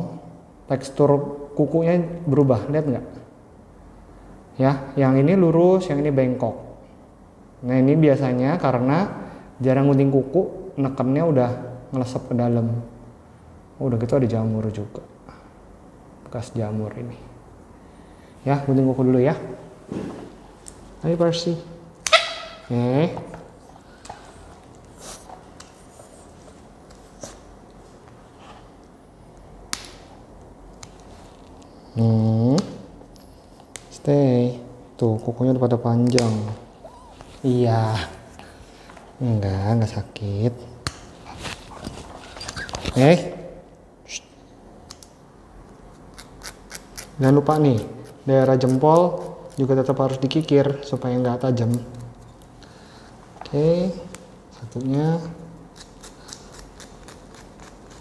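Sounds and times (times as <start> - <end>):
nail file rasping on claw: 46.1 - 49.7, 55.7 - 58.0.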